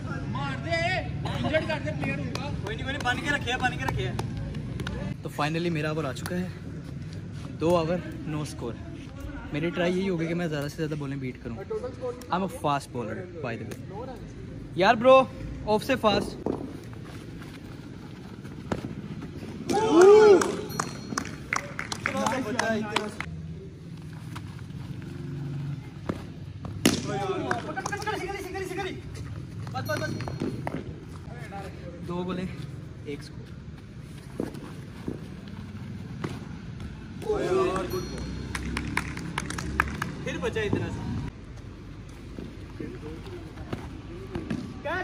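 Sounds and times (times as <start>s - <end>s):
hand claps: 2.1s - 5.1s, 19.9s - 23.3s, 27.3s - 28.2s, 37.6s - 40.4s
man shouting: 19.7s - 20.7s, 37.2s - 38.0s
man shouting loudly: 37.2s - 38.0s.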